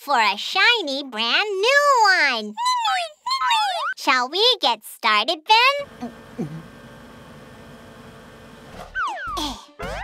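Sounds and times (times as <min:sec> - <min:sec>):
low mechanical whirring: 0:05.8 - 0:08.8.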